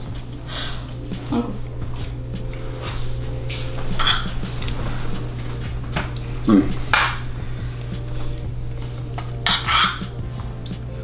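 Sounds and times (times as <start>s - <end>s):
background music: 0.0s - 11.0s
metal spoon scraping in bowl: 4.0s - 4.3s.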